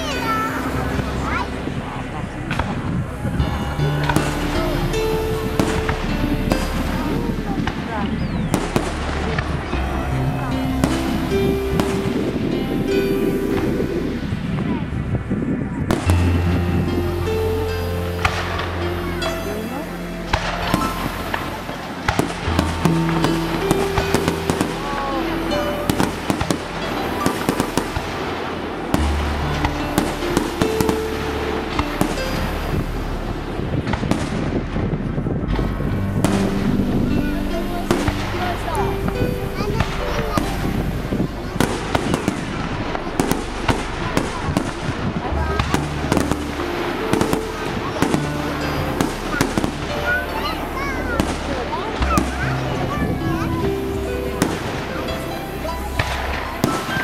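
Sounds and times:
music with held notes: 0:00.0 - 0:57.0.

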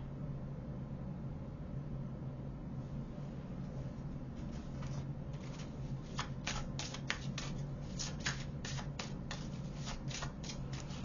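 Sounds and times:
low steady hum: 0:00.0 - 0:11.0
cards being shuffled: 0:04.4 - 0:11.0.

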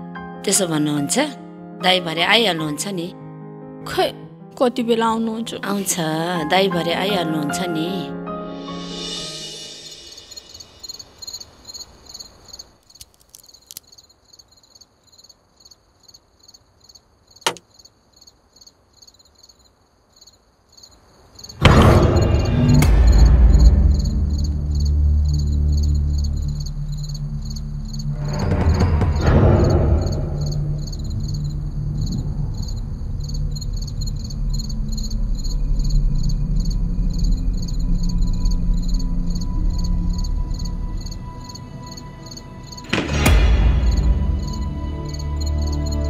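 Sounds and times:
crickets chirping: 0:08.7 - 0:46.0
low background music drone: 0:21.6 - 0:46.0.

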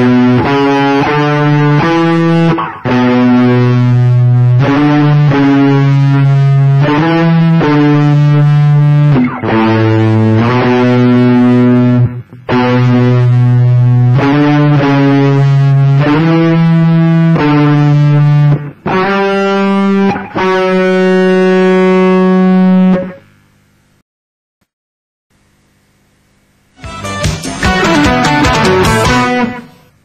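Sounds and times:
overdriven electric guitar solo: 0:00.0 - 0:23.2, 0:26.8 - 0:30.0.

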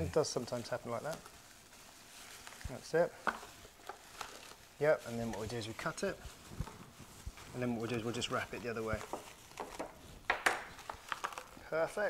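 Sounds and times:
cling film crinkling: 0:00.0 - 0:12.0.

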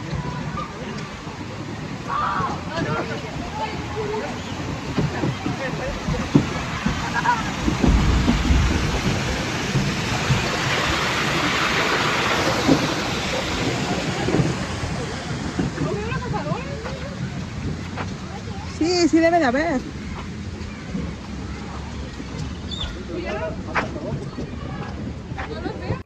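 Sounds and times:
wind buffeting microphone: 0:00.0 - 0:26.0
heavy low rumble: 0:05.5 - 0:18.7.

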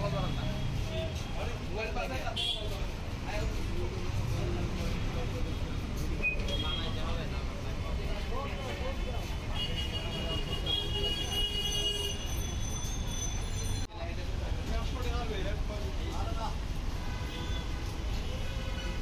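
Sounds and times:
low traffic rumble: 0:00.0 - 0:19.0.

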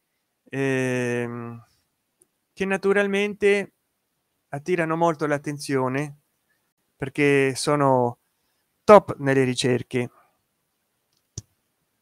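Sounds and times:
man speaking: 0:00.5 - 0:01.7, 0:02.6 - 0:03.7, 0:04.6 - 0:06.2, 0:07.0 - 0:08.2, 0:08.9 - 0:10.1.

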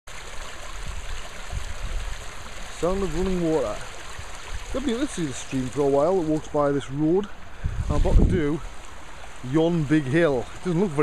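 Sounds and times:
stream running: 0:00.1 - 0:11.0.

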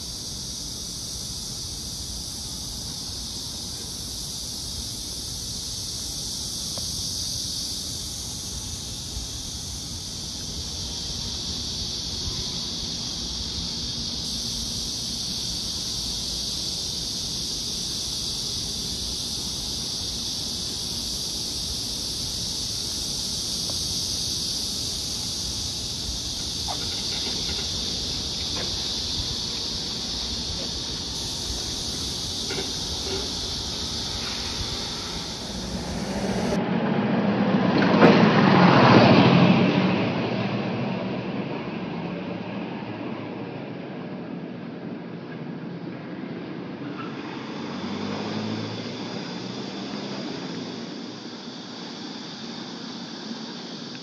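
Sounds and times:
cicadas buzzing: 0:00.0 - 0:37.7, 0:45.6 - 0:54.0
vehicle passing: 0:32.1 - 0:37.7, 0:47.4 - 0:50.7.

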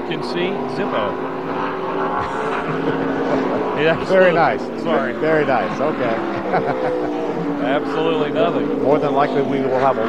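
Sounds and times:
race car engines droning: 0:00.0 - 0:10.0.

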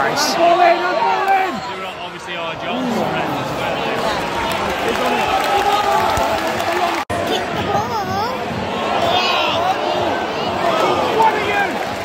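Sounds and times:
crowd shouting: 0:08.6 - 0:12.0.

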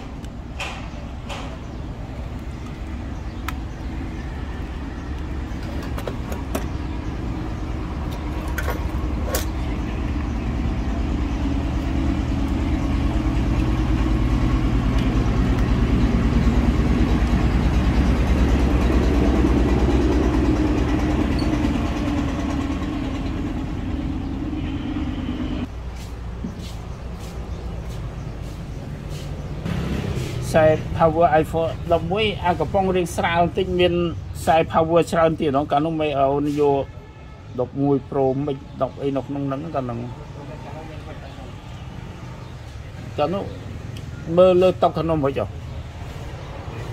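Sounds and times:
vehicle engine humming: 0:00.0 - 0:37.4.

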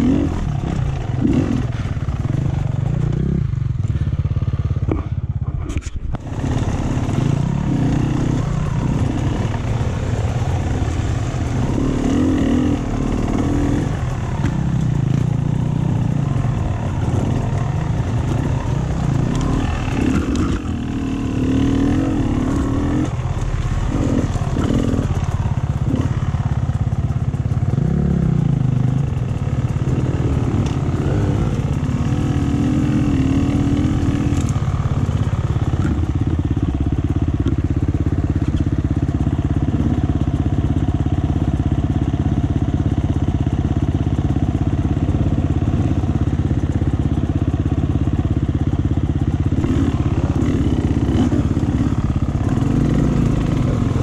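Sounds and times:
motorcycle engines idling: 0:00.0 - 0:54.0.

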